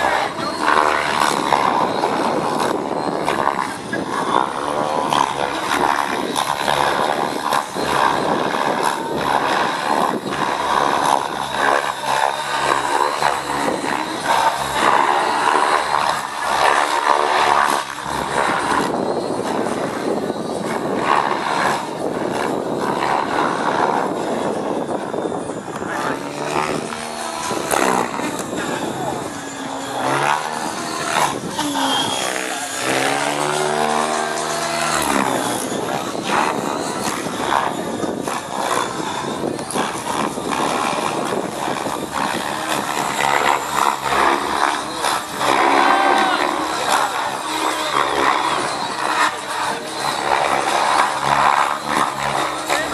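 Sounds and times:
rc helicopter rotor whoosh: 0:00.0 - 0:52.9.

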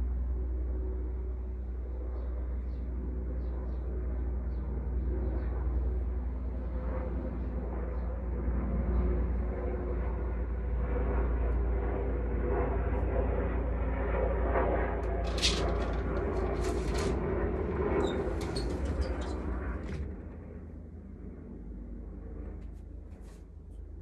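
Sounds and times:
low background rumble: 0:00.0 - 0:24.0
curtain rustling and clicking: 0:15.1 - 0:17.2.

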